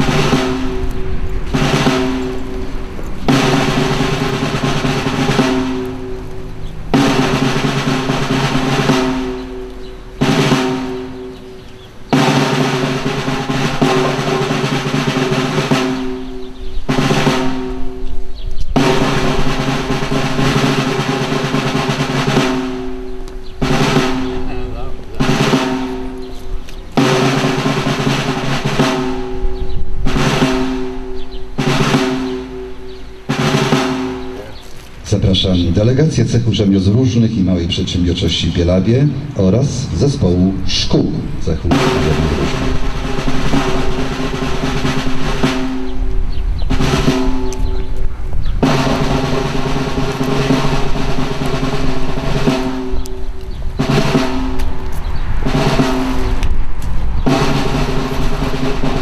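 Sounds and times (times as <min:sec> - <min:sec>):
snare drum roll: 0:00.0 - 0:11.4, 0:12.1 - 0:18.1, 0:18.7 - 0:34.5, 0:39.7 - 0:47.9, 0:48.6 - 0:59.0.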